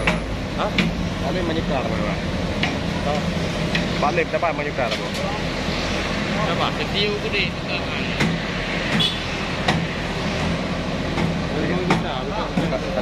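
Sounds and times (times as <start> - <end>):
metal knocks: 0.0 - 1.0
truck engine running: 0.0 - 13.0.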